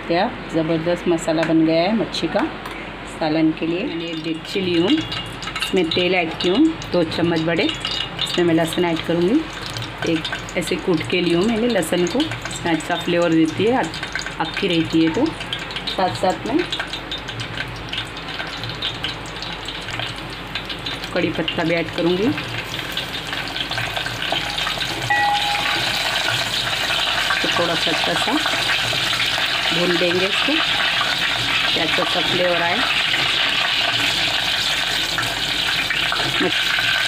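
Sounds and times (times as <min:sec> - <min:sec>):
garlic sizzling in hot oil: 0:03.5 - 0:37.0.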